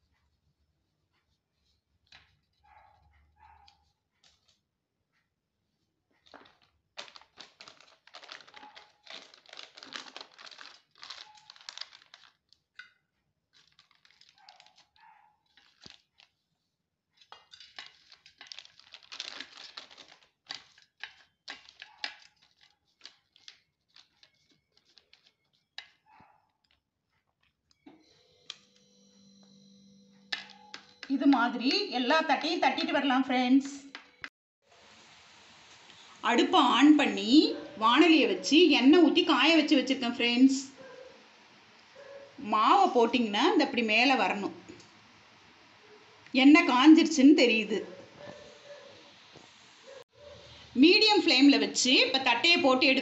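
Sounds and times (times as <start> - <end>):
plastic sheet crinkling: 6.2 - 12.8, 13.5 - 27.8.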